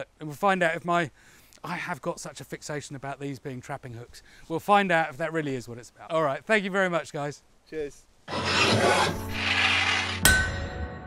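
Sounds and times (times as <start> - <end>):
harsh rasping rushing noise: 8.3 - 10.3.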